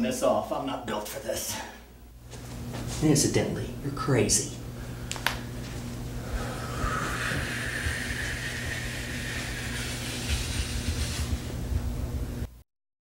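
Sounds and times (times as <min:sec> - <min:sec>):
electrical hum: 0:00.0 - 0:12.6
person blowing out breath: 0:06.2 - 0:11.6.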